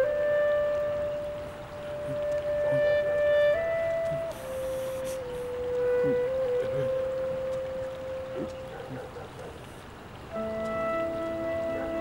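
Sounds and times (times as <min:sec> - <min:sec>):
flute-like long note: 0:00.0 - 0:08.9, 0:10.2 - 0:12.0.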